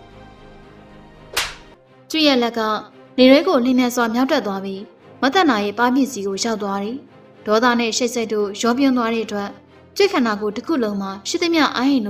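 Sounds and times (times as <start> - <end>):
soft background music: 0.0 - 12.0
short sharp swish: 1.4 - 1.8.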